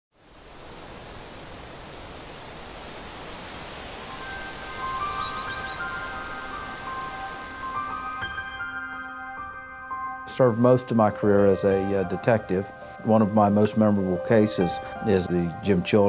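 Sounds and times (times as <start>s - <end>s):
outdoor hiss: 0.1s - 8.7s
bird chirping: 0.3s - 1.7s, 4.2s - 7.3s
sustained music notes: 4.0s - 16.0s.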